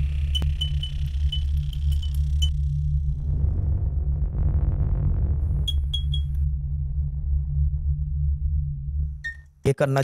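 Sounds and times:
deep electronic drone: 0.0 - 9.6.

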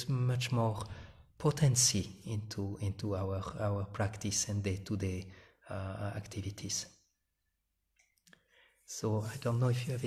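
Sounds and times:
man talking: 0.0 - 7.0, 8.9 - 10.0.

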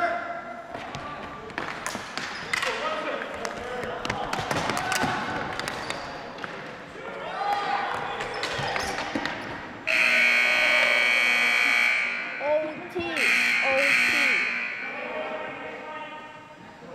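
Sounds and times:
ball and sticks clattering on floor: 0.8 - 6.7, 7.9 - 9.6
scoreboard buzzer blasts: 9.9 - 12.5, 13.2 - 15.0
players calling out: 9.9 - 16.5.

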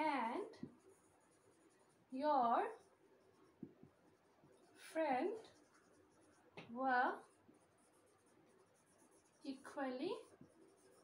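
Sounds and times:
marker pen writing on whiteboard: 0.0 - 11.0.

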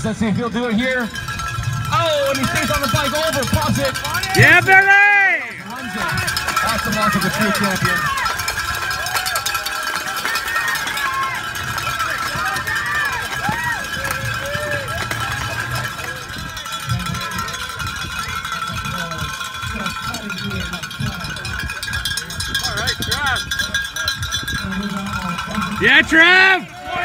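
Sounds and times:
cowbells ringing rapidly: 0.0 - 27.0
crowd shouts: 4.0 - 17.8, 25.3 - 27.0.

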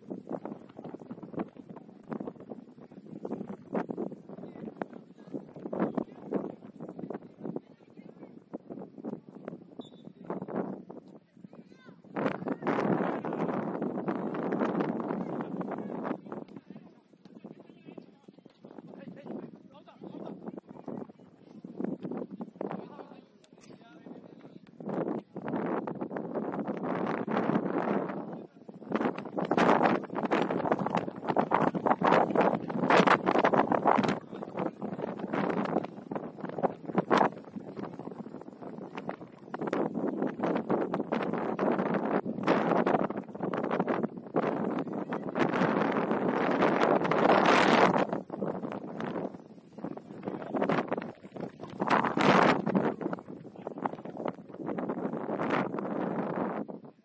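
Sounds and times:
gusty wind buffeting microphone: 0.0 - 23.2, 23.9 - 57.0.

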